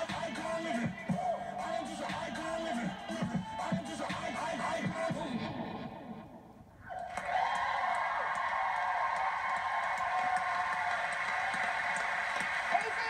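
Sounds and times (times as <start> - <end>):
vocal dance track: 0.0 - 6.5
audience applause and cheering: 6.9 - 13.0.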